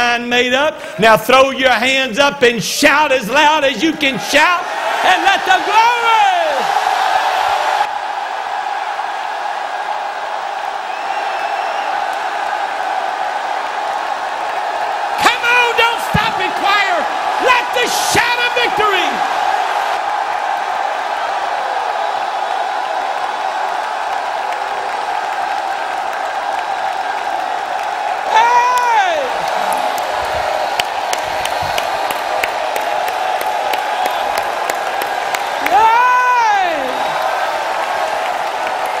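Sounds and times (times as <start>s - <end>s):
crowd shouting and praising: 0.0s - 39.0s
handclaps: 23.6s - 36.0s
person whooping: 28.2s - 30.0s, 35.6s - 37.2s.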